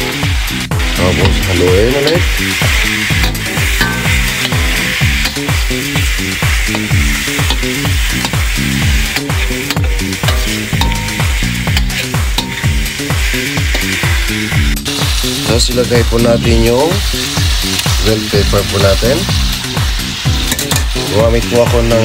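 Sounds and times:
background music with steady beat: 0:00.0 - 0:22.0
food sizzling in a wok: 0:00.0 - 0:22.0
metal spatula on wok: 0:01.0 - 0:21.3.

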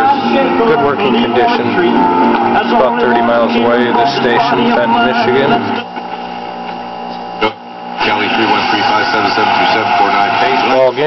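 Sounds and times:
radio hum: 0:00.0 - 0:11.0
radio announcer speaking: 0:02.6 - 0:05.8, 0:07.4 - 0:11.0.

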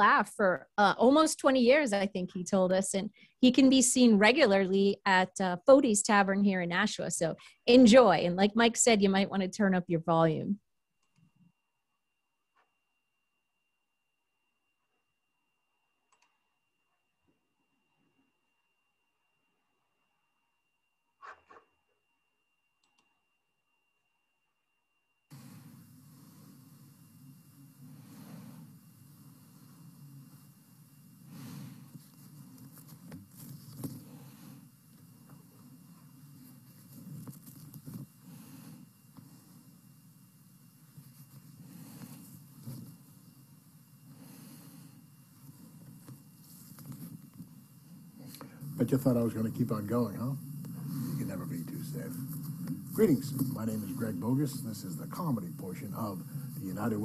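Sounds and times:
faint high whine: 0:00.0 - 0:57.0
steady hiss with low hum: 0:00.0 - 0:57.0
low background noise: 0:24.7 - 0:57.0
face mask rustling: 0:31.3 - 0:39.9.

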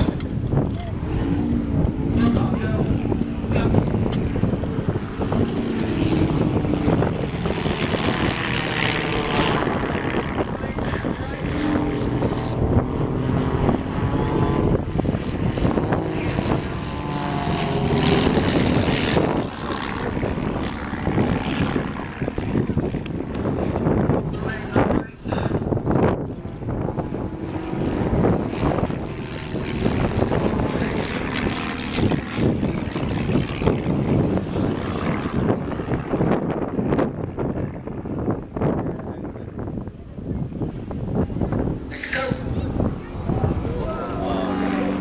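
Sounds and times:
propeller aircraft droning overhead: 0:00.0 - 0:45.0.

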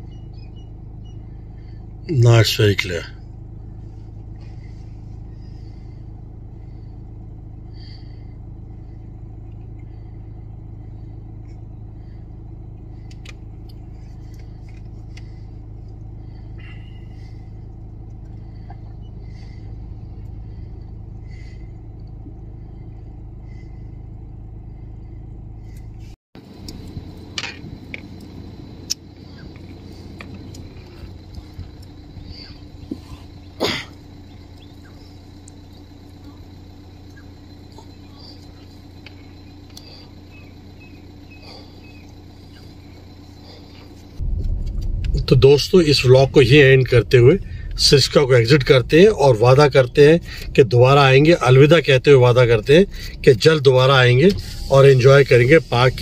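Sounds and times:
faint high chirps: 0:00.0 - 0:01.8
engine idling: 0:00.0 - 0:56.0.

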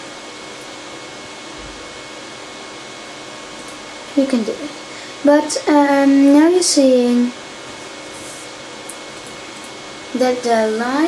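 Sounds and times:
room and equipment hiss: 0:00.0 - 0:11.0.

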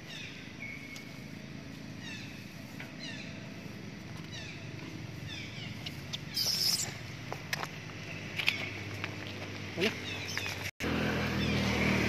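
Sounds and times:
animal squeaks: 0:06.3 - 0:07.0.

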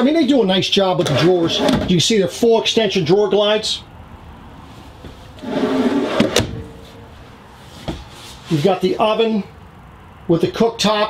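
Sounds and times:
drawer sliding shut: 0:01.0 - 0:01.9, 0:05.4 - 0:06.8.

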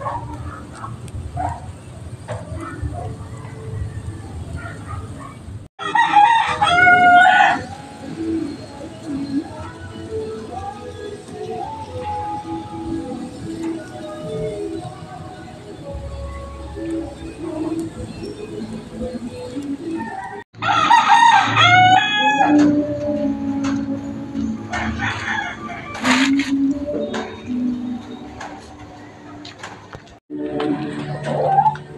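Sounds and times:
rooster crowing: 0:02.6 - 0:05.0, 0:05.8 - 0:08.4, 0:19.5 - 0:22.8, 0:24.7 - 0:26.3.

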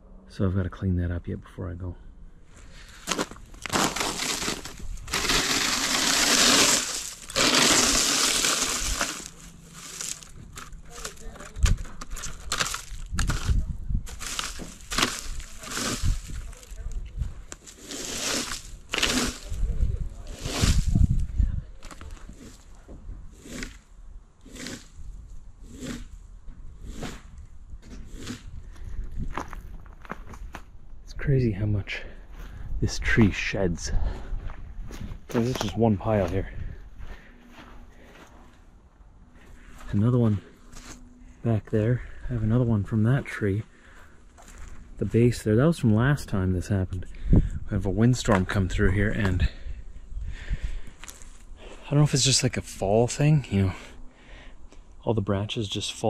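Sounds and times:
rake scraping across grass: 0:02.6 - 0:26.2, 0:26.8 - 0:28.5, 0:39.6 - 0:41.0
twigs crackling: 0:02.6 - 0:26.2, 0:43.7 - 0:45.1, 0:50.8 - 0:51.9.

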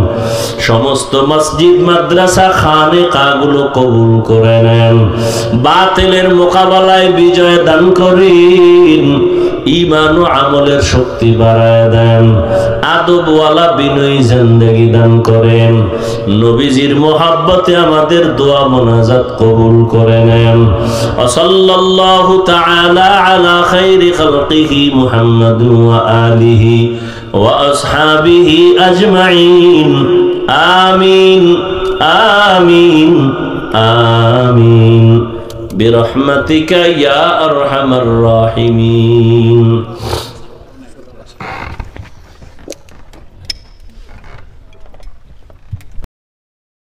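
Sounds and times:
man chanting: 0:00.0 - 0:41.7
handling clicks rustles and creaks: 0:40.8 - 0:46.0.

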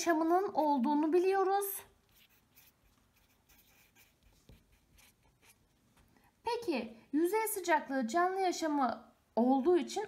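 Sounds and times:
marker pen scratching on paper: 0:00.0 - 0:01.2, 0:01.9 - 0:05.9.

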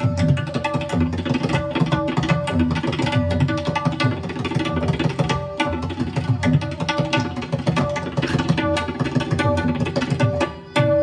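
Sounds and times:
rapid tabla strokes: 0:00.0 - 0:11.0.

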